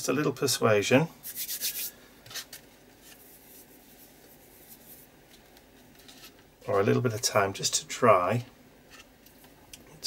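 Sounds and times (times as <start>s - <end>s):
hands rubbing paper: 1.2s - 5.1s.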